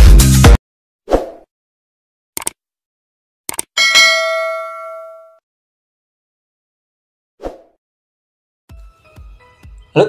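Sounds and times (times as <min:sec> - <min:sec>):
bell chime notification ding: 0:03.8 - 0:05.4.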